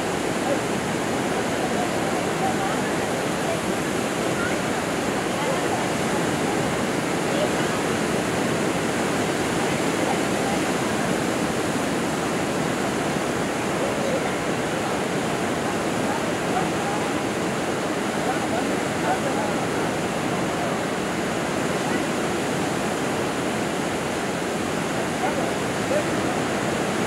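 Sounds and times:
faint distant voices: 0:00.0 - 0:27.0
small waves breaking on shore: 0:00.0 - 0:27.0.

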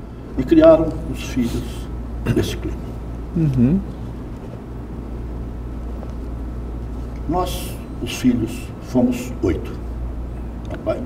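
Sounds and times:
low hum with faint hiss: 0:00.0 - 0:11.0.

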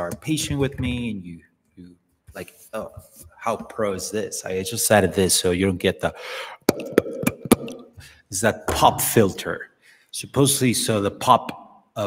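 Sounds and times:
short breath: 0:06.2 - 0:06.7, 0:08.0 - 0:08.3, 0:09.8 - 0:10.1
popping plosives into microphone: 0:06.6 - 0:09.2.

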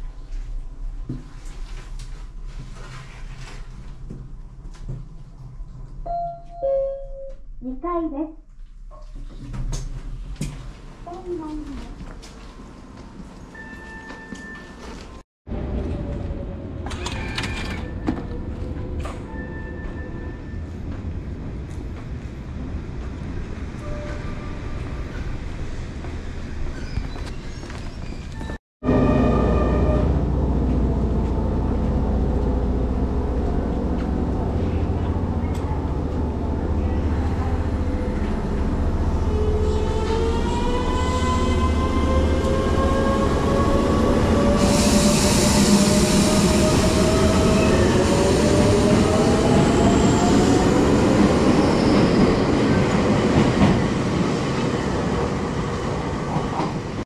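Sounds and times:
electric train rumble: 0:28.3 - 0:57.0.

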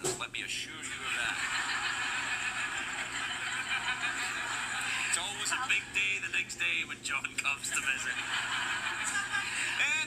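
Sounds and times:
man talking: 0:00.0 - 0:01.5, 0:05.0 - 0:08.3, 0:09.7 - 0:10.0
studio audience laughing: 0:00.8 - 0:06.3, 0:07.6 - 0:10.0.

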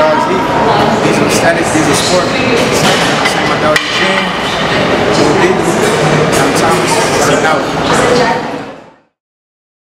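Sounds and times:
busy weight room background: 0:00.0 - 0:09.1.

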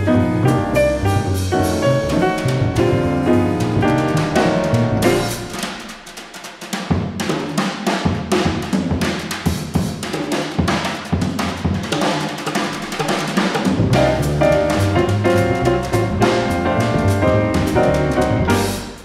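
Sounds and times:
double bass: 0:00.0 - 0:05.7, 0:13.8 - 0:19.0
piano: 0:00.0 - 0:06.4, 0:12.4 - 0:19.0
jazz drum solo: 0:00.0 - 0:19.0.

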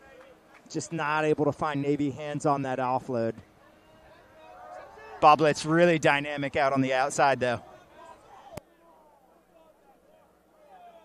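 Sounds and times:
faint distant voices: 0:02.5 - 0:05.8.

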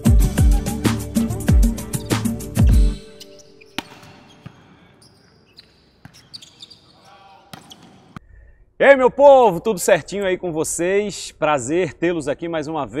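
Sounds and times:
shoes squeaking on court: 0:01.7 - 0:08.2
volleyball slaps: 0:03.7 - 0:04.8, 0:07.5 - 0:08.2.

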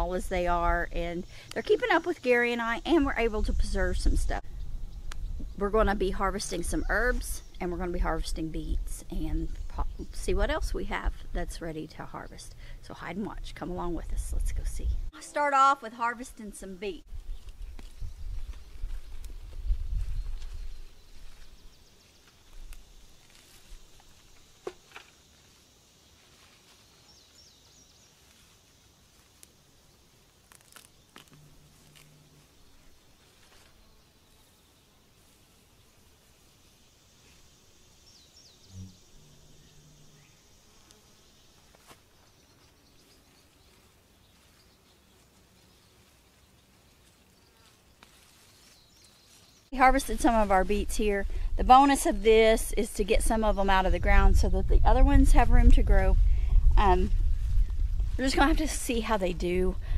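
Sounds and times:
wind rumble on microphone: 0:03.0 - 0:11.7, 0:13.3 - 0:15.1, 0:17.1 - 0:21.6, 0:49.8 - 0:59.9
insect buzzing: 0:16.4 - 0:52.6
plants rustling and clicking: 0:17.4 - 0:25.3, 0:30.4 - 0:32.2, 0:46.2 - 0:49.5.

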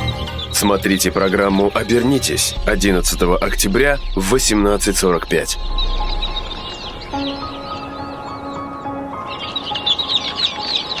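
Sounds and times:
background music with held tones: 0:00.0 - 0:11.0
birds chirping: 0:00.0 - 0:11.0.

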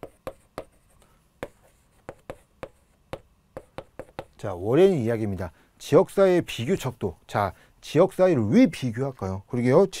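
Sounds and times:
chalk tapping and scraping: 0:00.0 - 0:04.4.

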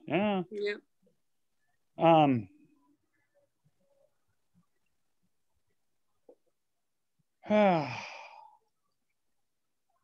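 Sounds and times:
person sighing: 0:07.4 - 0:08.6.

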